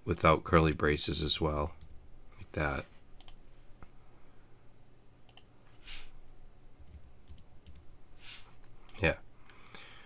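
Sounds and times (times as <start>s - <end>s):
computer keyboard keystrokes: 6.8s - 7.9s.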